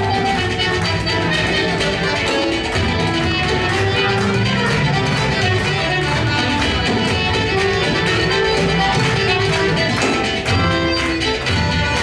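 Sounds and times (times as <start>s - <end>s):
fiddle melody: 0.0s - 12.0s
frame drum beat: 0.0s - 12.0s
strummed string instrument: 0.0s - 12.0s.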